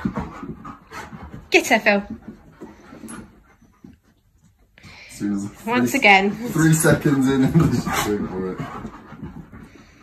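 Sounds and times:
dogs playing: 0:00.0 - 0:10.0.

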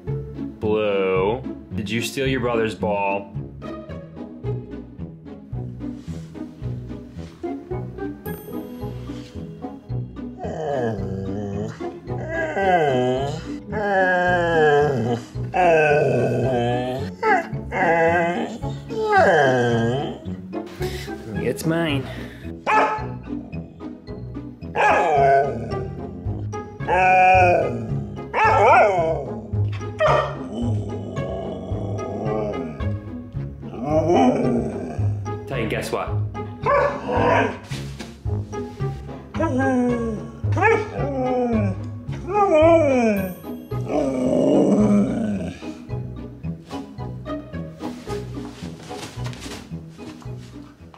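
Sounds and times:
background music: 0:00.0 - 0:50.9
husky howling yowls: 0:10.4 - 0:20.2, 0:24.8 - 0:32.9, 0:33.7 - 0:35.2, 0:36.7 - 0:37.6, 0:39.4 - 0:45.8.

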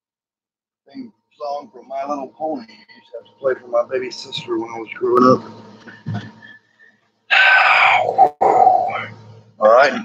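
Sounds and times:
man's loud strained voice: 0:07.3 - 0:10.0.

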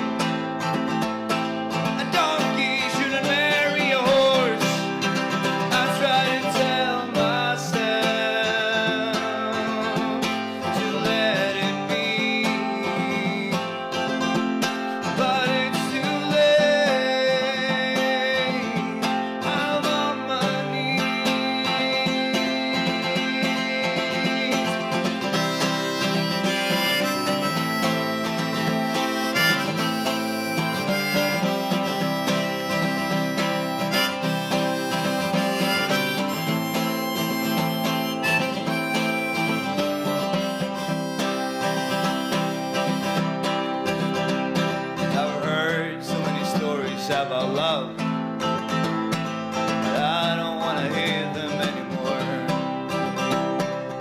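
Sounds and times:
harmonica melody: 0:00.0 - 0:54.0
strummed acoustic guitar: 0:00.0 - 0:54.0.

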